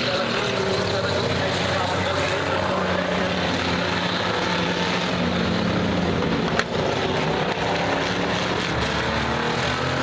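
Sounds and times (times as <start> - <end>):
race car engines running: 0.0 - 10.0.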